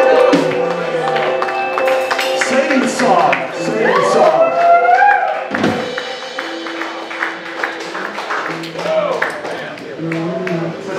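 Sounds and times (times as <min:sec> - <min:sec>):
low instrument notes: 0:00.0 - 0:10.9.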